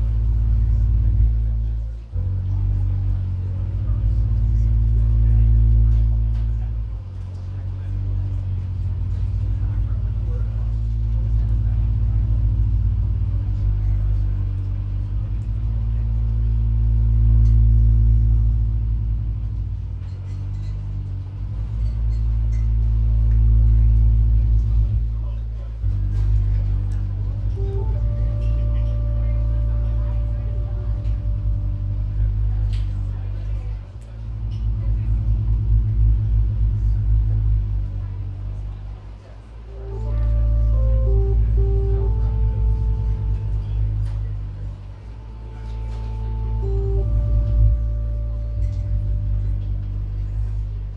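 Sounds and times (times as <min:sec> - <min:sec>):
synthesizer drone music: 0:00.0 - 0:50.9
high held synth tones: 0:27.5 - 0:32.5, 0:39.7 - 0:50.8.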